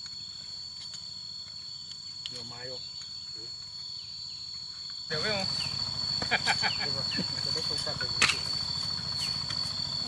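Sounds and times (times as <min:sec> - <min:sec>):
crickets chirping chorus: 0:00.0 - 0:10.0.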